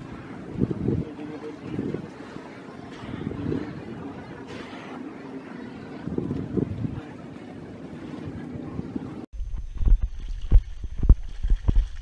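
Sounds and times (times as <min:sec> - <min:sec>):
wind rushing across microphone: 0:00.0 - 0:02.3, 0:02.9 - 0:04.4, 0:05.8 - 0:12.0
low wind buffeting thumps: 0:09.4 - 0:12.0.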